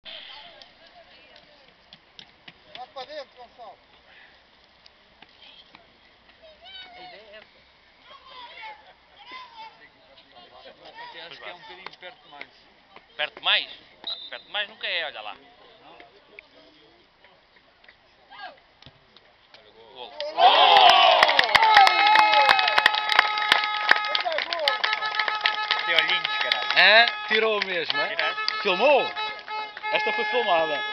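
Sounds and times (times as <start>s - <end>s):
crowd cheering: 20.1s - 30.9s
distant shout: 20.2s - 30.9s
man speaking: 25.9s - 29.3s, 29.9s - 30.9s.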